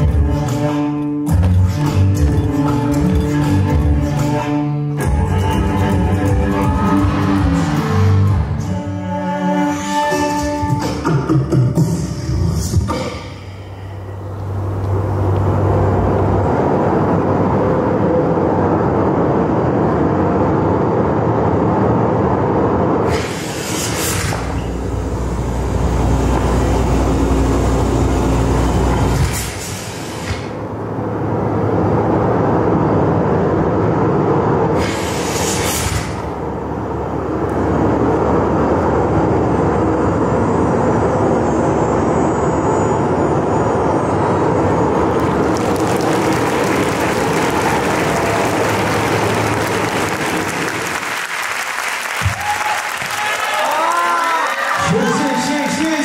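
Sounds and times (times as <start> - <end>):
rumbling soundtrack over pa: 0.0 - 23.1, 24.0 - 29.5, 30.3 - 51.0
crowd cheering and applause: 5.5 - 9.0, 45.0 - 56.0
rising whooshes: 5.8 - 8.8.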